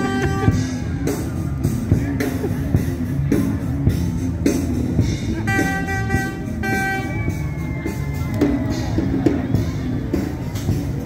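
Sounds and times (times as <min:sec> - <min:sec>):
car horn honking: 0:00.0 - 0:00.7, 0:05.4 - 0:07.4
rock music with drum beat: 0:00.0 - 0:11.0.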